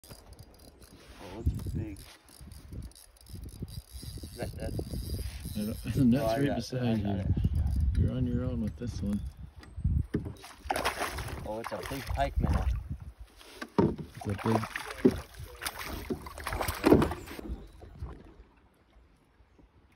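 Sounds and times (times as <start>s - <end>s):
water splashing: 10.4s - 12.9s, 13.9s - 19.2s
knocks on canoe: 13.7s - 14.2s, 16.0s - 17.2s.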